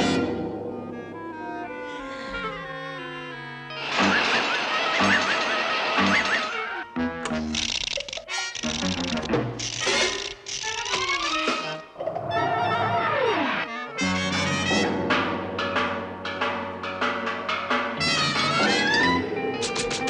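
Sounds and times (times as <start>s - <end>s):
cartoon orchestral music: 0.0s - 7.6s, 10.6s - 20.0s.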